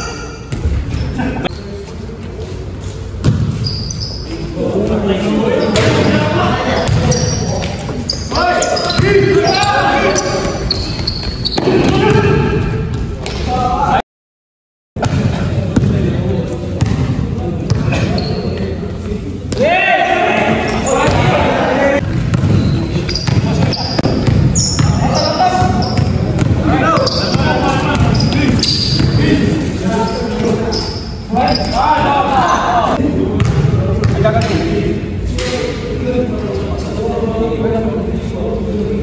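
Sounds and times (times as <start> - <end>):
basketball bouncing on court: 3.2 - 3.7, 6.8 - 7.7, 15.0 - 16.1, 16.8 - 17.1, 17.7 - 18.2, 22.0 - 29.3, 33.4 - 34.6
players shouting: 8.1 - 10.8, 11.5 - 12.9, 19.6 - 22.0, 30.7 - 33.0.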